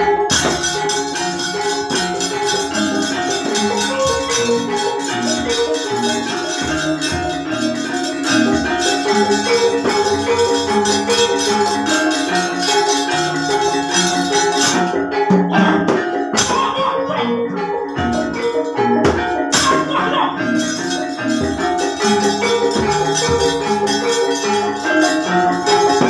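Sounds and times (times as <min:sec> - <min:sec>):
gamelan playing: 0:00.0 - 0:26.0.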